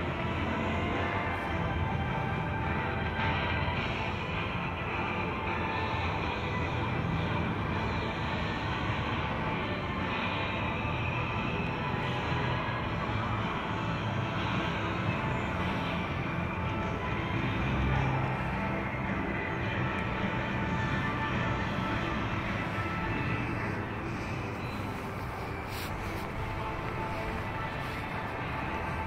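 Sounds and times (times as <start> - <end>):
distant traffic hum: 0.0 - 29.0
faint music: 0.0 - 29.0.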